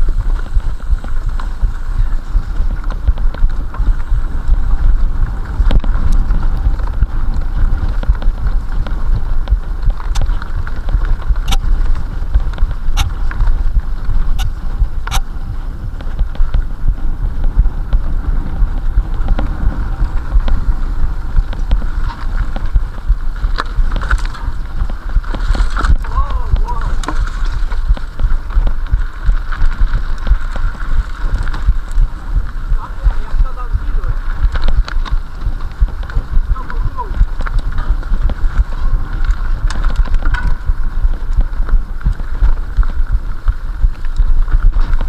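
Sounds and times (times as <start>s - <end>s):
wind and trail vibration rumble: 0.0s - 45.0s.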